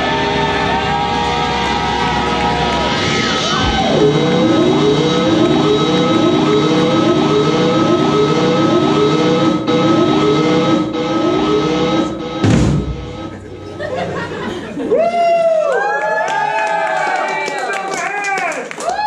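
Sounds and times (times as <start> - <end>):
electric guitar feedback: 0.0 - 13.8
sustained drone: 0.0 - 14.3
swooping pitch: 1.9 - 14.5
steady high tone: 2.8 - 14.5.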